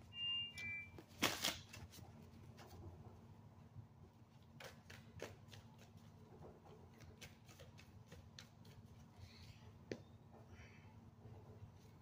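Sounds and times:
cards being shuffled: 1.0s - 2.0s.

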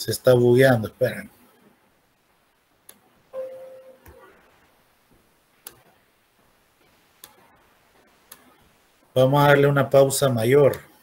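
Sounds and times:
computer mouse clicks: 7.2s - 7.4s, 8.3s - 8.6s.

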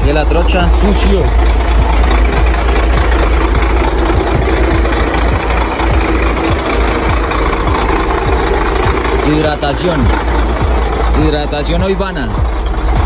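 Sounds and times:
truck engine idling: 0.0s - 13.0s.

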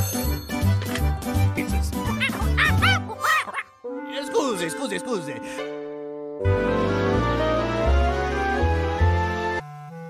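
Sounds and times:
cartoon monkey chattering: 1.9s - 3.8s.

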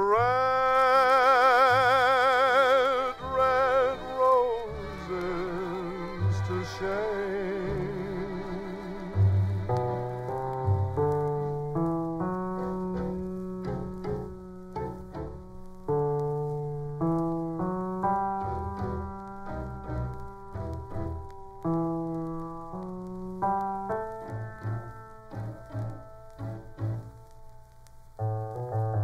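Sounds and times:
piano melody: 0.0s - 29.0s
soft orchestral backing: 0.0s - 29.0s.

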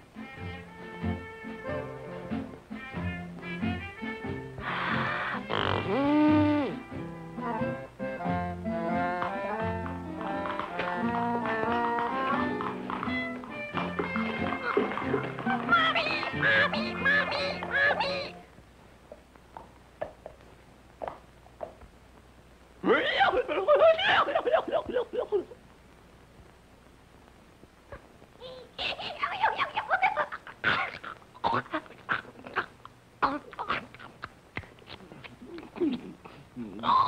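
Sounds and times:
cartoon foal braying: 4.7s - 6.8s, 15.4s - 18.4s
cartoon orchestral music: 5.5s - 18.4s.

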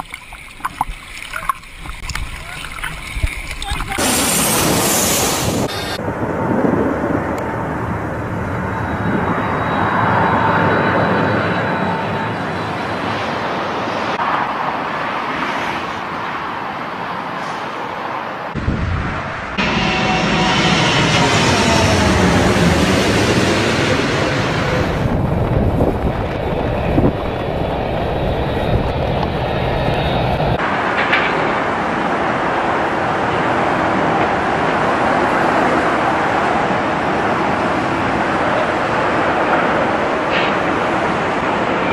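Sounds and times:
jet airliner engines: 2.8s - 41.9s.

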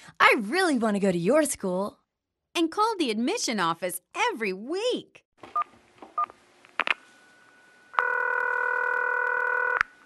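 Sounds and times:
telephone ringback tone: 8.0s - 9.8s.

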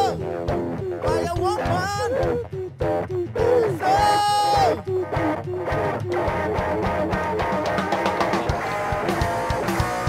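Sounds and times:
live rock band playing: 0.0s - 3.1s, 3.8s - 10.0s
electric guitar notes: 0.0s - 10.0s.

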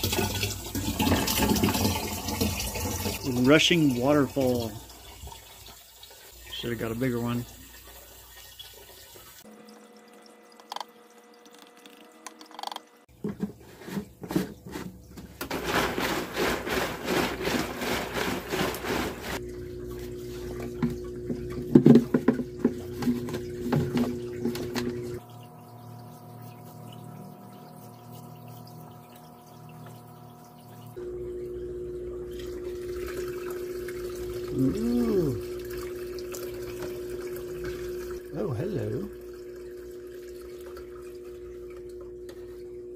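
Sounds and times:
water trickling into plastic jug: 0.0s - 12.2s, 16.7s - 42.6s.

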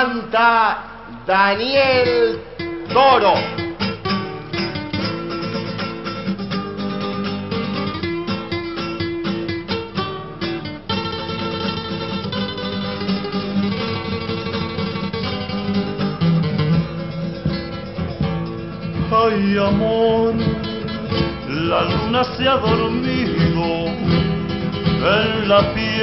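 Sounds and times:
acoustic guitar folk music: 0.0s - 26.0s.

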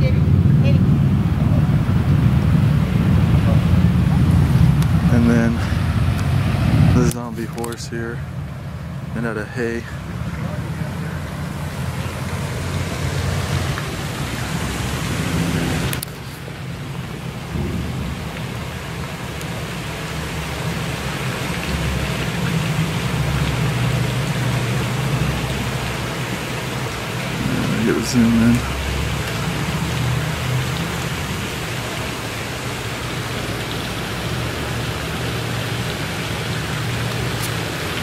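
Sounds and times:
wind buffeting microphone: 0.0s - 7.6s, 10.0s - 26.1s.

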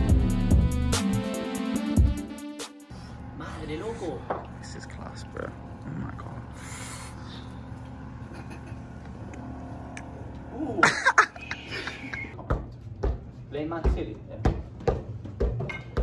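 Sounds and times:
low machine hum: 2.9s - 16.0s
soccer ball thuds: 12.4s - 16.0s.

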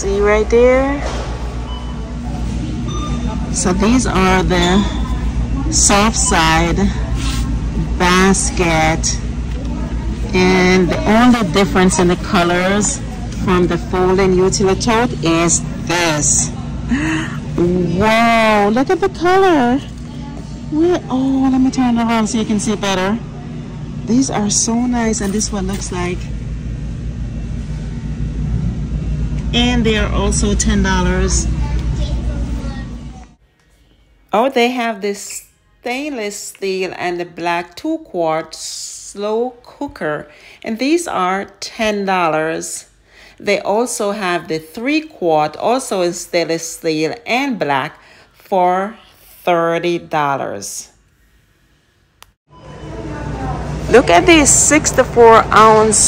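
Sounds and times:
low rumble of store machinery: 0.0s - 33.4s, 52.5s - 56.0s.

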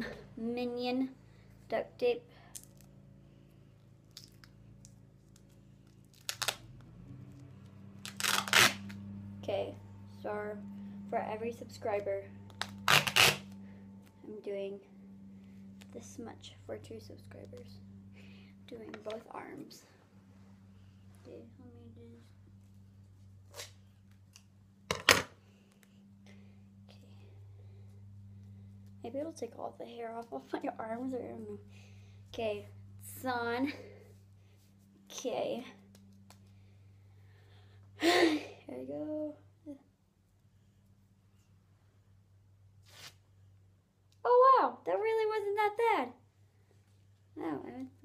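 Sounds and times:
steady low hum: 0.0s - 48.0s
duct tape ripping off roll: 5.3s - 6.7s, 8.0s - 9.0s, 12.5s - 13.6s, 23.4s - 23.8s, 42.8s - 43.2s.

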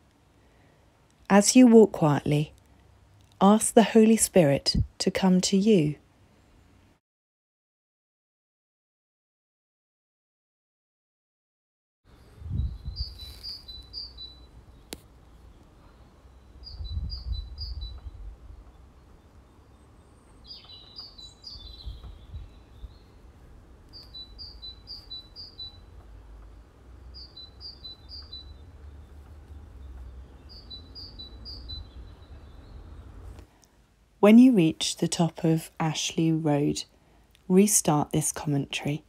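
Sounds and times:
songbirds singing: 12.1s - 33.4s
busier bird call: 12.4s - 23.2s, 23.9s - 25.9s, 26.5s - 33.1s.

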